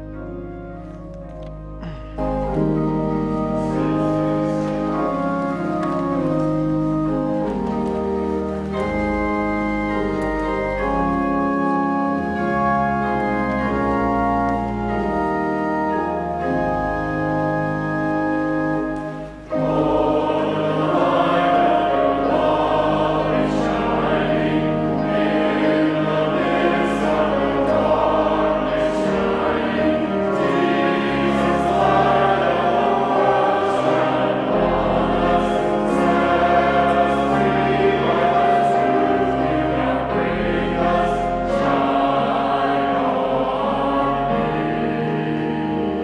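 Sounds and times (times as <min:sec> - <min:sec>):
congregation singing a hymn: 0:00.0 - 0:46.0
organ playing: 0:00.0 - 0:46.0.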